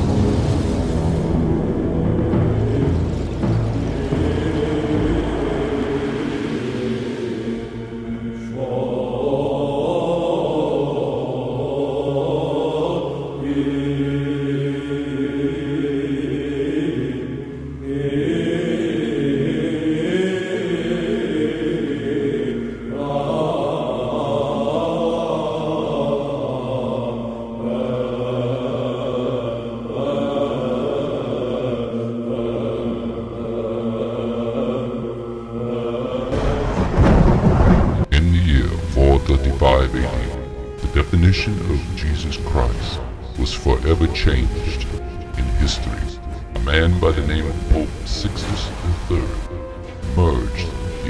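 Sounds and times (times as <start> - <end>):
slow choral chanting: 0.0 - 51.0.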